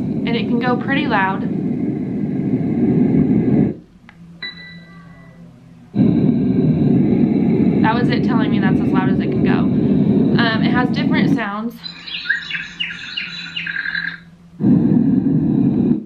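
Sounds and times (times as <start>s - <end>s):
steady fan noise: 0.0s - 16.0s
white noise from sound machine: 0.0s - 16.0s.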